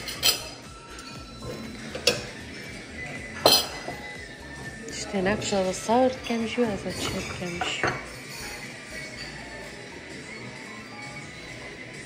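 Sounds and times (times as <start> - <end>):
ceramic dishes clinking: 0.0 - 4.2, 5.3 - 9.6
faint music: 0.0 - 12.0.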